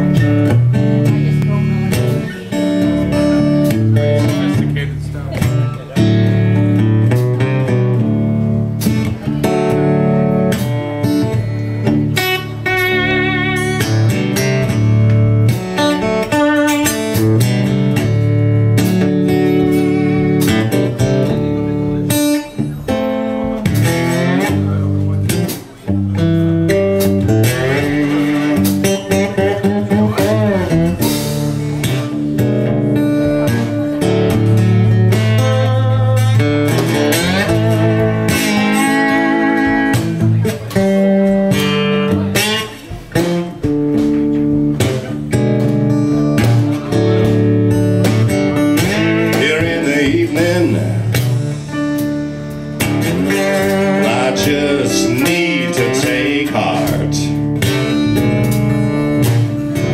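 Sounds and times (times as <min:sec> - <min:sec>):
drums: 0:00.0 - 0:59.9
keyboards: 0:00.0 - 0:59.9
slide guitar: 0:00.0 - 0:59.9.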